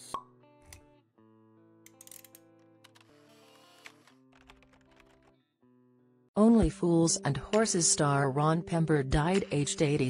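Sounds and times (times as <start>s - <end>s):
quiet background music: 0.1s - 10.0s.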